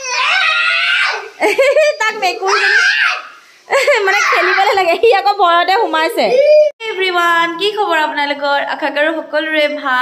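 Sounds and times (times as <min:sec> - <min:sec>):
young boy crying: 0:03.9 - 0:04.8.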